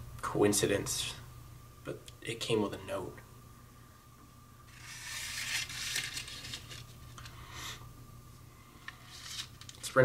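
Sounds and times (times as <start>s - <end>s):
paper rustling and crinkling: 4.7s - 7.2s, 8.9s - 10.0s.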